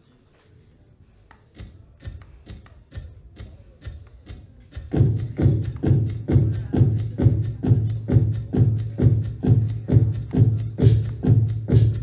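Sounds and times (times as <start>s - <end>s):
beatboxed sharp clicks: 1.3s - 12.0s
deep kick and bass layer: 1.6s - 12.0s.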